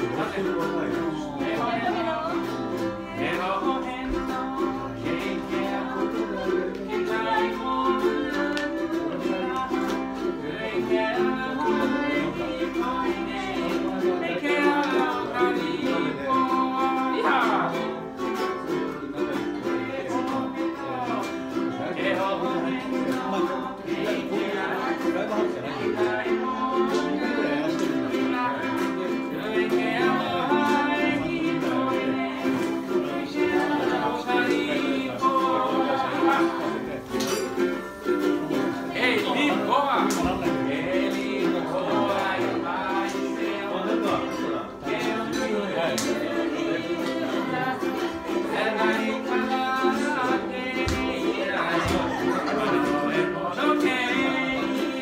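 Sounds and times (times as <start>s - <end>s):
man singing: 0.0s - 55.0s
ukulele strumming: 0.0s - 55.0s.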